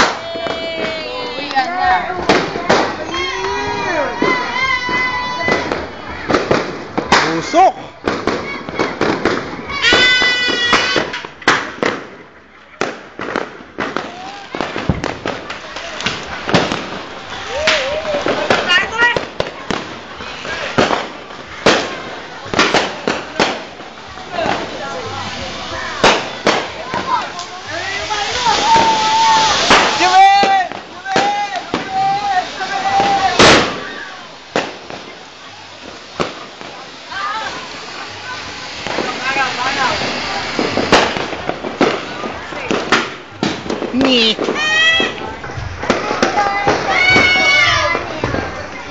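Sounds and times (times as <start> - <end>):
firecrackers banging: 0.0 - 48.9
people calling and shouting: 0.0 - 48.9.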